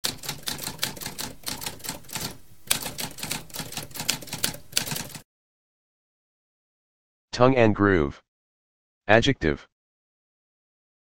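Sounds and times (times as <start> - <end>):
typewriter typing: 0.0 - 5.2.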